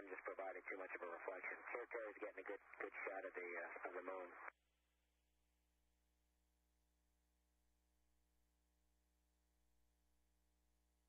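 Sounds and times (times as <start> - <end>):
man talking over radio: 0.0 - 4.5.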